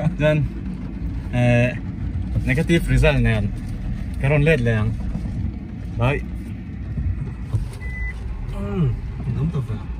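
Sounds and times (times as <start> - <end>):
car road and engine rumble: 0.0 - 9.9.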